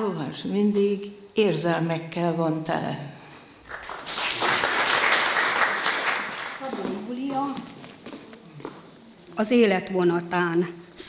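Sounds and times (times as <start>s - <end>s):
small audience clapping: 3.7s - 7.1s
person speaking: 6.6s - 7.9s.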